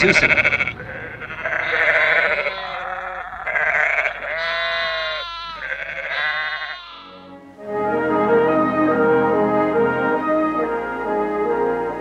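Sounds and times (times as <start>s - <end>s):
sheep and lambs bleating: 0.0s - 7.4s
brass-led orchestral music: 7.1s - 12.0s.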